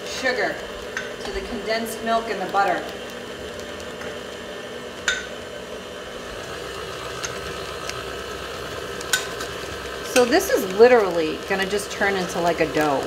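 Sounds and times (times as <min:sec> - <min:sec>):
stand mixer motor hum: 0:00.0 - 0:13.0.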